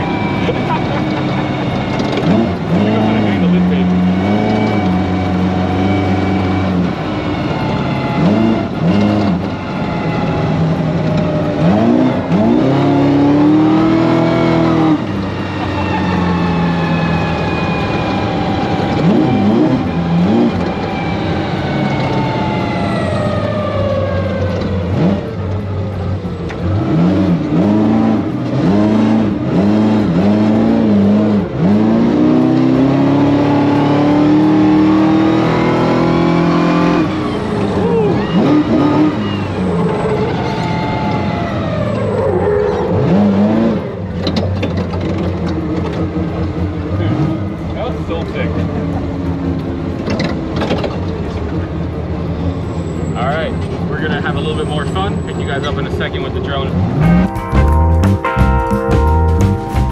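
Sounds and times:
truck engine revving: 0.0s - 59.9s.

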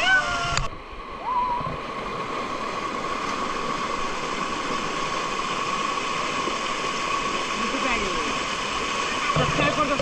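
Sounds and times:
water rushing over rocks: 0.0s - 10.0s.

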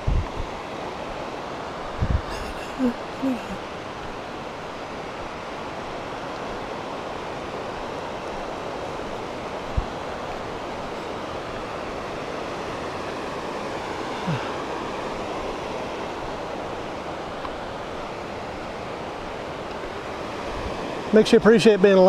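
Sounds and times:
distant mountain stream rushing: 0.0s - 22.0s.

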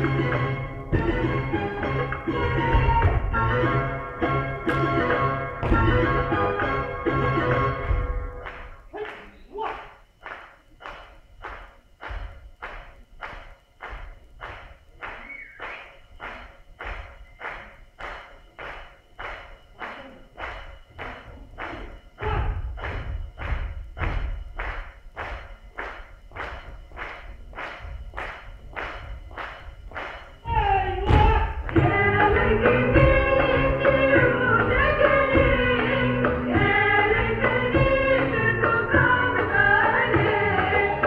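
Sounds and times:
dancers' sharp rhythmic strikes: 0.0s - 41.0s
thuds of dancers landing jumps: 2.1s - 3.5s, 4.7s - 6.3s, 7.6s - 8.8s, 20.4s - 30.4s, 31.0s - 33.4s
loud music with singing: 30.5s - 41.0s.

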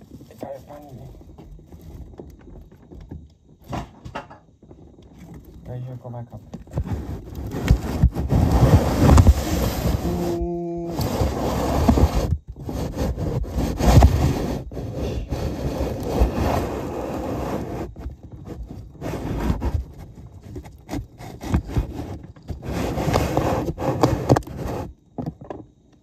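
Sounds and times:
loud scraping and rubbing: 6.3s - 25.0s.

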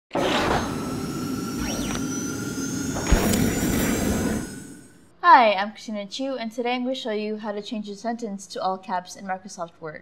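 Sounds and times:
sharp hit: 2.9s - 5.0s.

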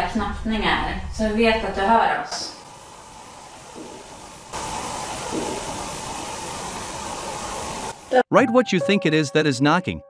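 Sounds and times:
steady background hiss: 0.0s - 8.2s.

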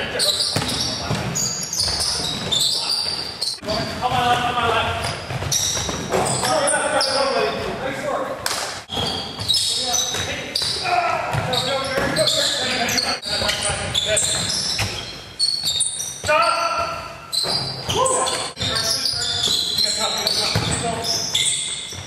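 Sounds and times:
sneakers squeaking: 0.0s - 22.0s
basketball bouncing on court: 0.4s - 6.6s, 8.9s - 12.3s, 13.2s - 22.0s.

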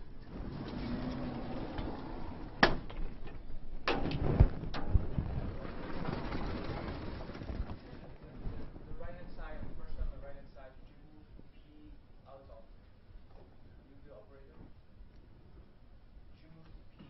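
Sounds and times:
sliding chalkboard panels rumbling: 0.0s - 9.6s.

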